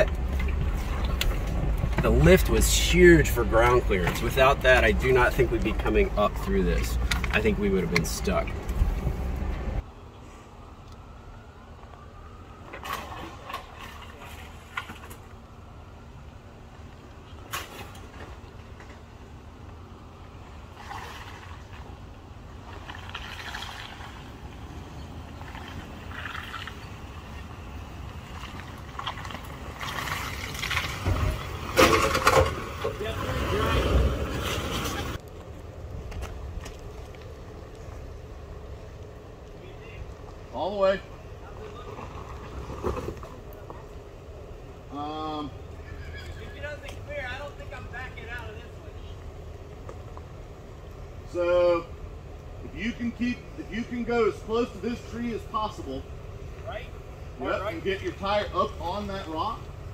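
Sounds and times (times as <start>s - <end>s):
engine rumbling on dirt grade: 0.0s - 59.9s.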